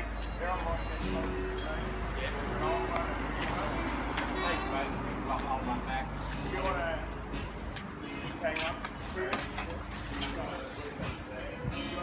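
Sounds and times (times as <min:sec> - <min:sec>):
low indistinct talking: 0:00.0 - 0:12.0.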